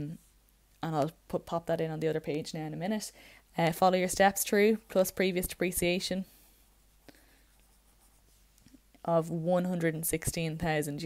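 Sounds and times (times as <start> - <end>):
pencil scratching on paper: 6.7 - 8.6.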